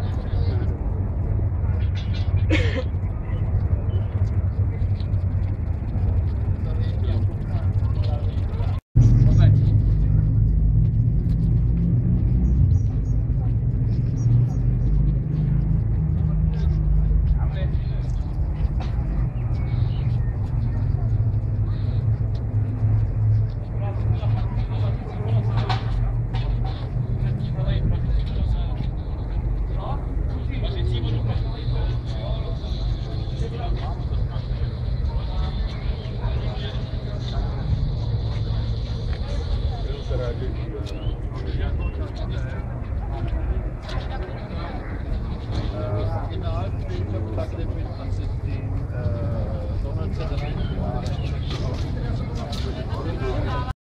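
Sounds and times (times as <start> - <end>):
low rumble: 0.0 - 53.7
indistinct voices: 0.0 - 53.8.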